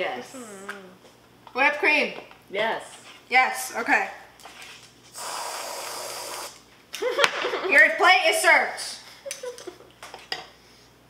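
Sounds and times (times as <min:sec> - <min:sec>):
aerosol whipped cream hissing: 0:05.1 - 0:06.6.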